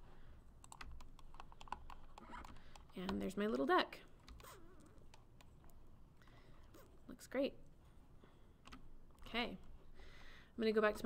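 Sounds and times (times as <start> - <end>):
mouse and keyboard clicking: 0.6 - 5.8.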